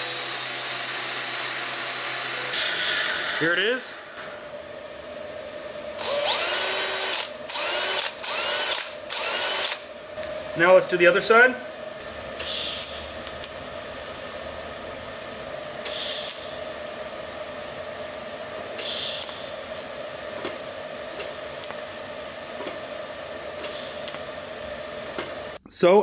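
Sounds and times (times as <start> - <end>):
welding arc hissing: 0.0 - 4.0, 12.4 - 14.6, 15.8 - 16.8, 18.8 - 20.2, 23.6 - 25.6
welder hum: 0.0 - 25.6
sharp welding hisses: 12.4 - 13.2, 15.9 - 16.6, 18.8 - 19.6, 23.6 - 24.2.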